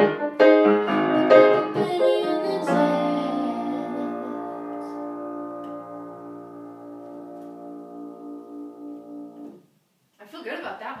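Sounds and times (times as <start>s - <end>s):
grand piano chord ringing: 0.0s - 9.6s.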